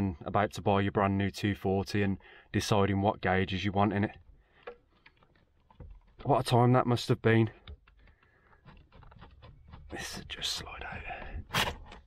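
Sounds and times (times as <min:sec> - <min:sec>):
plastic gauge clicking and rubbing: 0:03.8 - 0:12.0.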